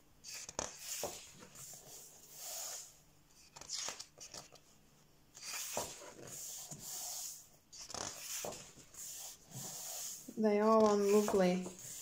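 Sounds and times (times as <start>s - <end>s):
hands rubbing pages: 0.3s - 4.6s, 5.4s - 12.0s
paper pages turning: 3.4s - 4.6s, 7.8s - 10.0s, 10.6s - 12.0s.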